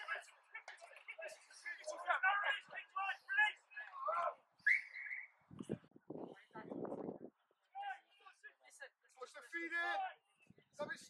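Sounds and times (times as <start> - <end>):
players shouting: 0.0 - 5.3.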